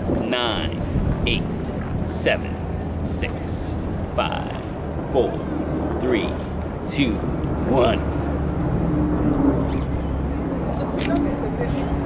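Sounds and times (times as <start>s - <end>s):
engine hum: 0.0s - 12.0s
low rumble of road traffic: 0.0s - 12.0s
passers-by talking: 0.2s - 12.0s.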